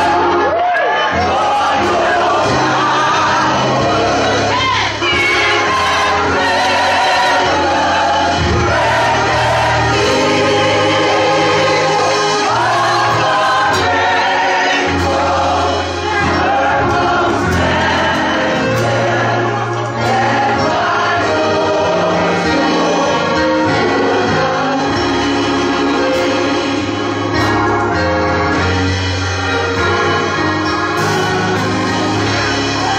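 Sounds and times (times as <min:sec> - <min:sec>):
gospel choir singing: 0:00.0 - 0:32.9
instrumental accompaniment: 0:00.0 - 0:32.9.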